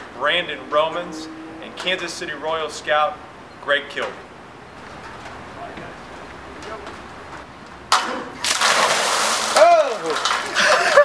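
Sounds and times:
ice water splashing: 8.0 - 11.0
laughter: 10.4 - 11.0.

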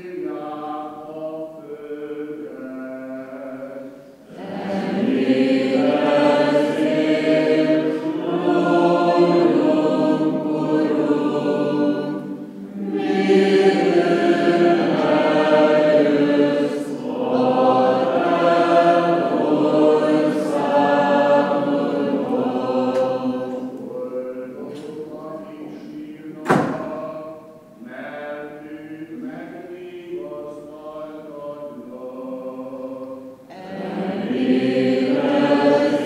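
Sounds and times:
group singing unaccompanied chant: 0.0 - 36.0.

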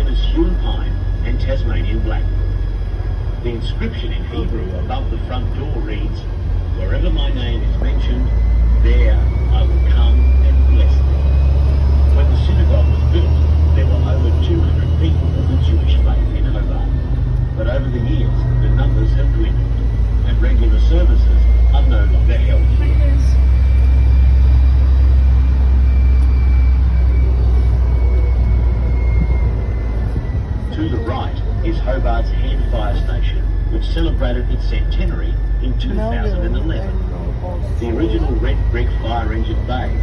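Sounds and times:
bus engine and road rumble: 0.0 - 40.0
drivetrain whine: 0.0 - 40.0
indistinct background chatter: 3.4 - 23.6, 30.5 - 40.0.

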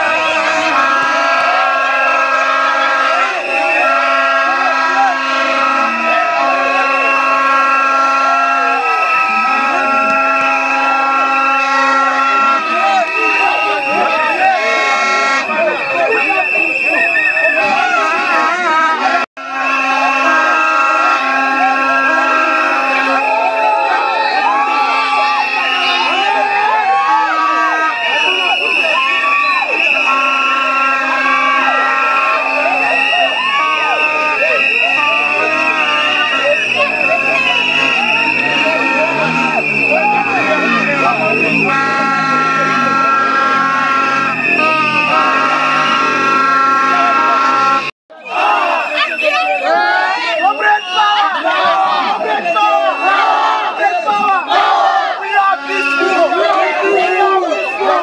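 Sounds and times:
crowd chanting and singing: 0.0 - 58.0
vuvuzela horns blowing: 0.0 - 58.0.

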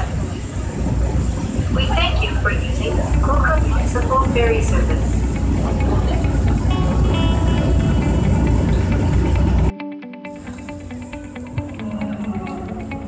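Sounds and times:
ferry engine low rumble: 0.0 - 9.7, 10.6 - 13.0
background music melody: 1.6 - 13.0.

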